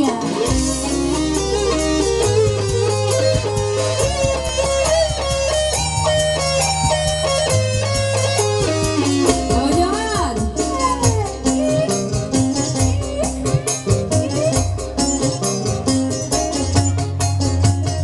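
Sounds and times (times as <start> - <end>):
band playing lead melody: 0.0 - 18.0
hand drum strokes: 0.0 - 18.0.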